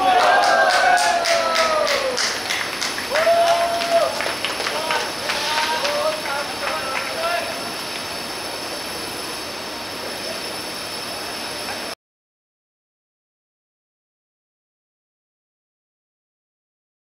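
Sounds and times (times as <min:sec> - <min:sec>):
players shouting: 0:00.0 - 0:02.2, 0:03.1 - 0:07.6
hand claps: 0:00.1 - 0:07.2
outdoor hiss: 0:00.7 - 0:12.0.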